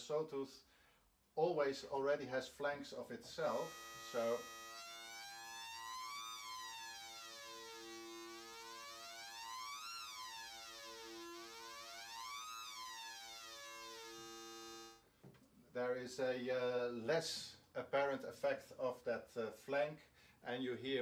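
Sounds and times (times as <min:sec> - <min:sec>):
synthesizer sawtooth sweeping: 0:03.3 - 0:15.0.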